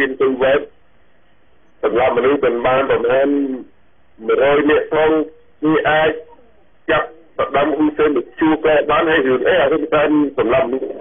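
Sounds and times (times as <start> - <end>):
person talking: 1.8 - 11.0.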